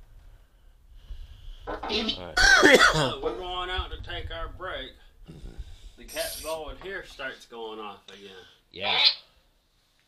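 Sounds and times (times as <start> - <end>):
man speaking: 1.9 - 5.4, 6.0 - 9.2.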